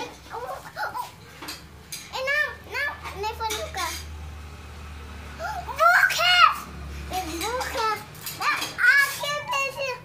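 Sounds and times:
child squealing and babbling: 0.0 - 1.2, 5.4 - 6.7, 8.4 - 10.0.

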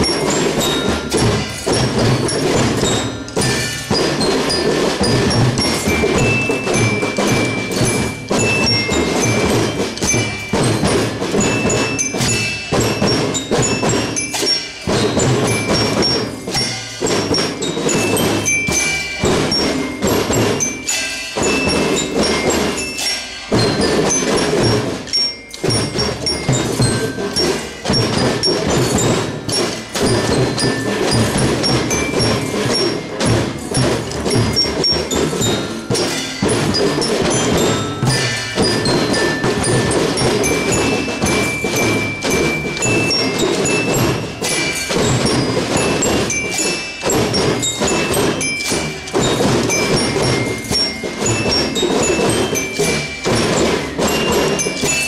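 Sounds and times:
glockenspiel melody: 0.0 - 55.0
snare and bass drums beating: 0.0 - 55.0.

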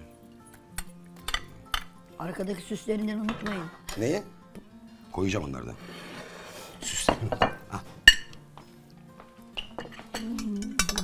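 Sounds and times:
background music: 0.0 - 11.0
metal spoon clinking on pan: 9.6 - 11.0.

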